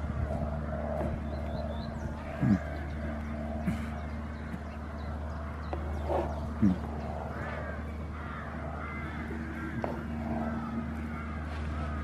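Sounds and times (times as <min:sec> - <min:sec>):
goat grunting call: 0:02.2 - 0:04.8, 0:05.7 - 0:07.9.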